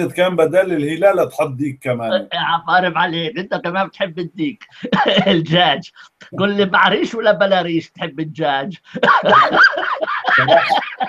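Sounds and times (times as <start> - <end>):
man laughing heartily: 4.8 - 5.5, 8.9 - 11.0.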